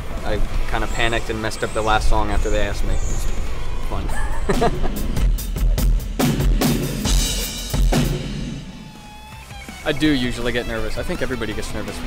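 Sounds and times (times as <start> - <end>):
rock drum kit playing: 4.5 - 12.0.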